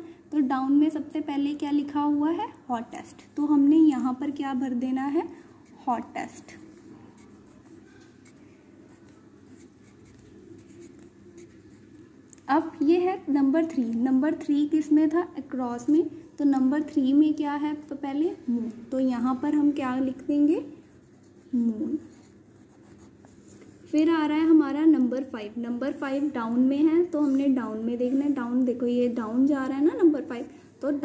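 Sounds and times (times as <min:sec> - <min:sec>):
pencil scratching on paper: 0:05.0 - 0:12.0, 0:20.9 - 0:24.1, 0:25.8 - 0:29.3.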